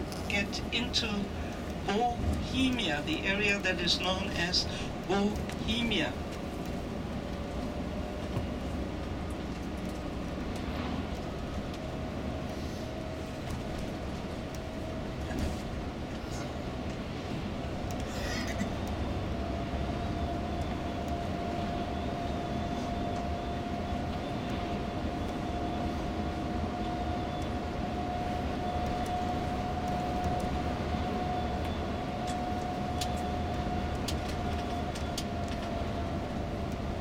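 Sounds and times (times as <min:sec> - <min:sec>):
coach engine and road noise: 0:00.0 - 0:37.0
steady whine: 0:00.0 - 0:37.0.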